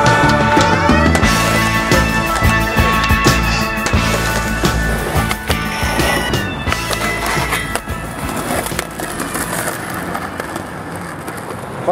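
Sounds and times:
music track: 0.0 - 10.5
skateboard popping and landing: 0.0 - 11.9
skateboard wheels rolling on concrete: 0.0 - 11.9.

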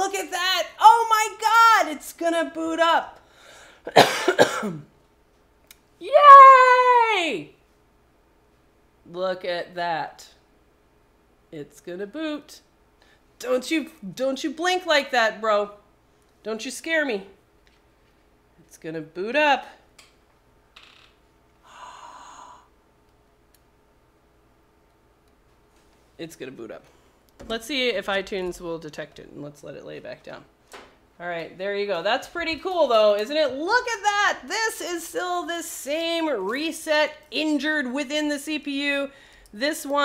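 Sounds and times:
woman coughing: 3.9 - 4.9
woman cheering: 6.0 - 7.5
person sighing: 21.6 - 22.7.

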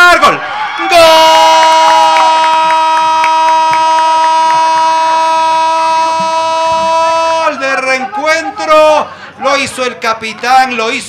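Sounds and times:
commentator shouting goal call: 3.2 - 9.8.

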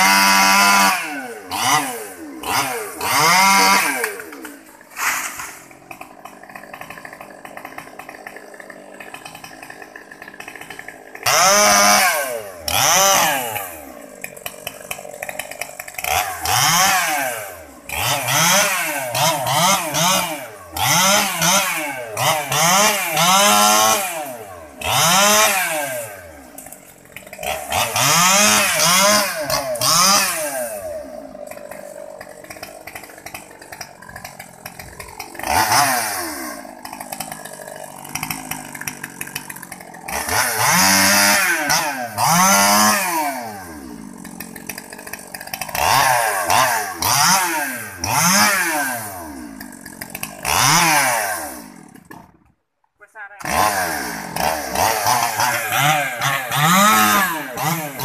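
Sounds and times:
chainsaw revving and idling: 0.0 - 58.0.

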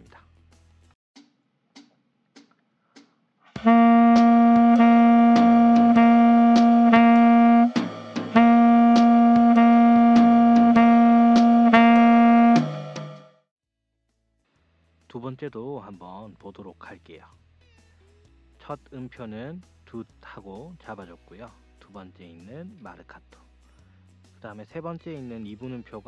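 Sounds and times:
tenor saxophone playing: 3.6 - 13.2.

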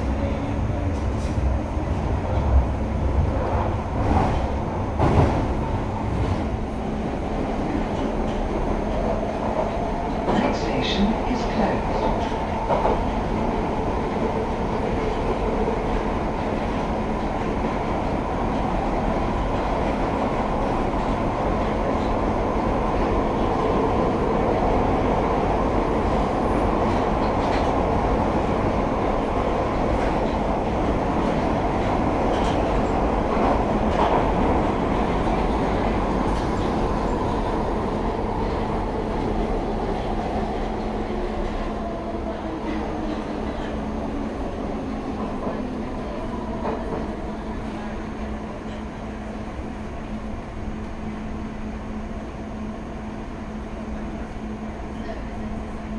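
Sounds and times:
train rumbling through tunnel: 0.0 - 55.9.

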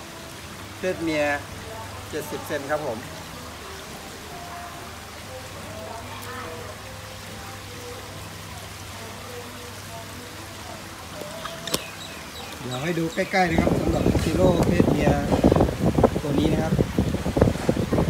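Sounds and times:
water trickling: 0.0 - 18.0.

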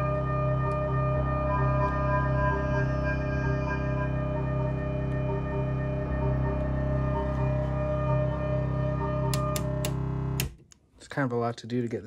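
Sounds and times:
low pulsing tone: 0.0 - 10.4
synthesizer drone: 0.0 - 10.5
sharp clicks: 9.3 - 10.8.

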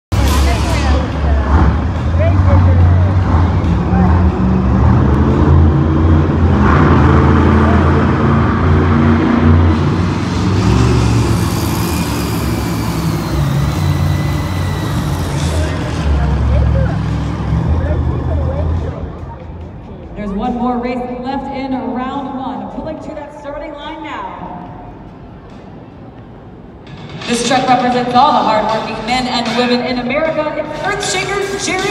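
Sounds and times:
monster truck engines revving: 0.1 - 20.5
crowd voices: 0.1 - 31.9.

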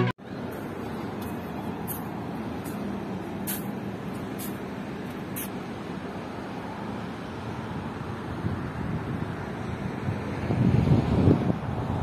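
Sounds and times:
car park traffic noise: 0.0 - 12.0
short soft hisses: 3.4 - 3.7.

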